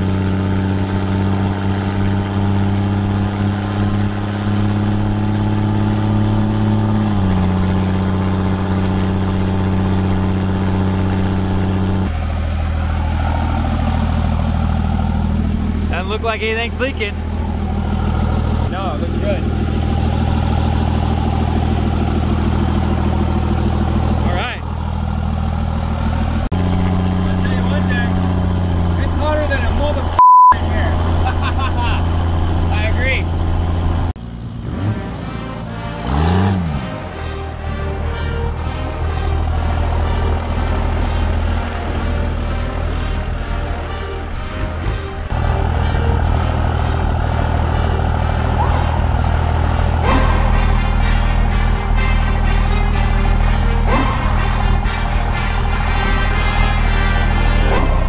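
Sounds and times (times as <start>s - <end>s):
diesel car engine running: 0.0s - 58.0s
short loud beep: 30.2s - 30.6s.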